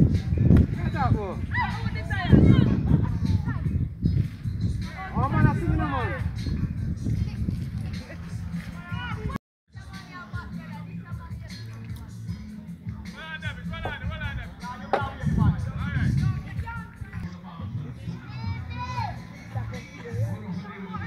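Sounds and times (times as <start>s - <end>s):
music with bass line: 0.0s - 21.0s
people talking and calling out: 0.0s - 21.0s.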